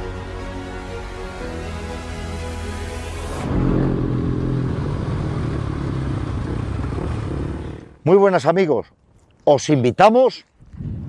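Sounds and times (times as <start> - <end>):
music: 0.0 - 3.6
vehicle engine running loudly: 1.8 - 8.0.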